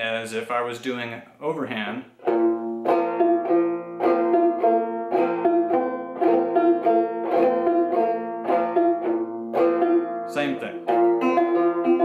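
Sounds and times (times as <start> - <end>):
banjo picking: 1.8 - 12.0.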